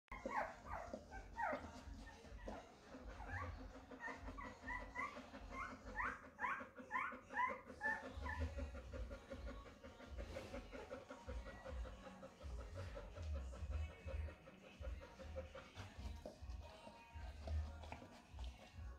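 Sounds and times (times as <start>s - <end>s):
dog whimpering: 0.1s - 16.2s.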